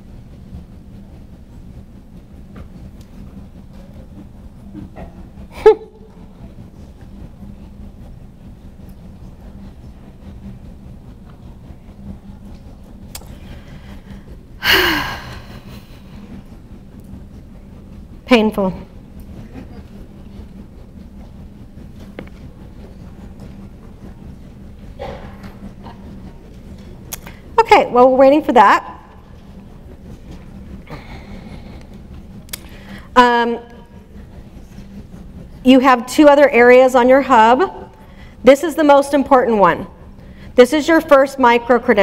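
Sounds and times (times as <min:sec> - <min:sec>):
low steady rumble: 0:00.0 - 0:42.0
steady low hum: 0:00.0 - 0:42.0.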